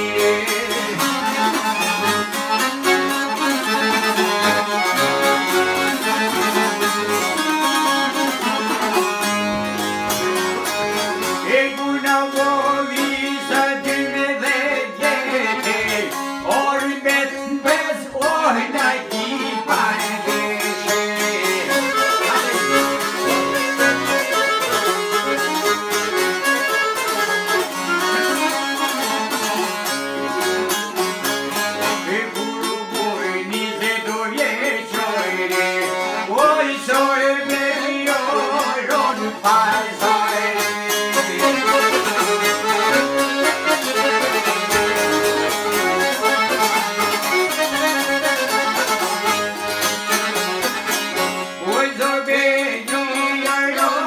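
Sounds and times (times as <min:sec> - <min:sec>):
man singing: 0:00.0 - 0:02.4, 0:11.3 - 0:25.1, 0:31.9 - 0:46.7, 0:51.5 - 0:54.0
piano accordion: 0:00.0 - 0:54.0
plucked long-necked lutes: 0:00.0 - 0:54.0.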